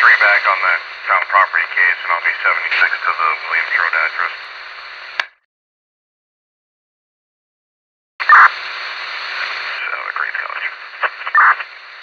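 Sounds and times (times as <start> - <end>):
faint garbled radio voice: 0.0 - 4.6, 8.3 - 11.8
radio static: 0.0 - 5.2, 8.2 - 12.0.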